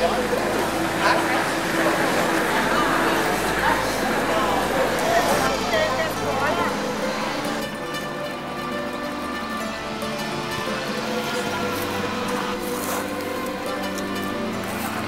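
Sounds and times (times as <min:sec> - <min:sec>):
voices: 0:00.0 - 0:09.0
mandolin music: 0:00.0 - 0:15.0.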